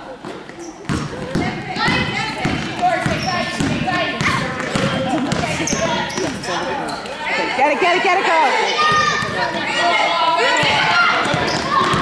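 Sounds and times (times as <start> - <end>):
basketball bouncing on gym floor: 0.8 - 6.5, 10.6 - 12.0
people shouting: 7.3 - 12.0.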